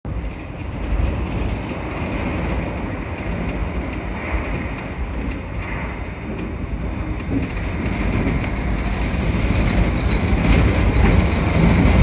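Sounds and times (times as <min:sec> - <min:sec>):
monorail car rumbling with hiss: 0:00.1 - 0:12.0.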